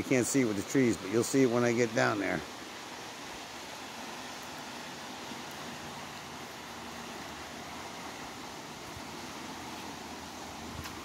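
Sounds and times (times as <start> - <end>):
fast-flowing river rushing: 0.0 - 11.0.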